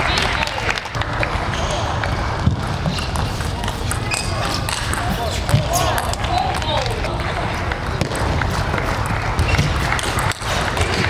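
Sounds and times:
crowd hubbub and voices: 0:00.0 - 0:11.0.

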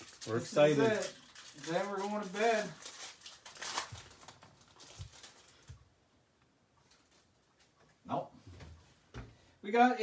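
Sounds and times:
trading cards and wrapper rustling: 0:00.0 - 0:05.8.

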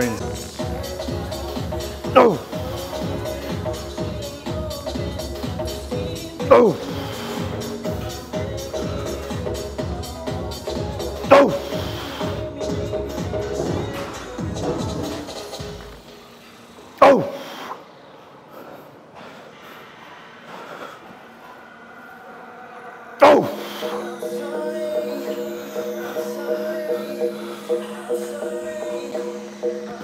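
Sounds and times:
background music with a beat: 0:00.0 - 0:16.3, 0:23.7 - 0:30.0
man shouting with effort: 0:02.0 - 0:02.6, 0:06.4 - 0:06.9, 0:11.2 - 0:11.8, 0:17.0 - 0:17.4, 0:23.2 - 0:23.6.

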